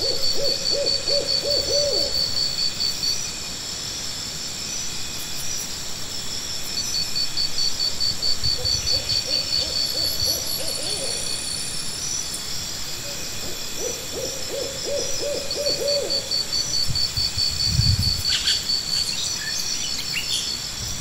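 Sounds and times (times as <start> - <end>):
high insect chirping: 0.0 - 21.0.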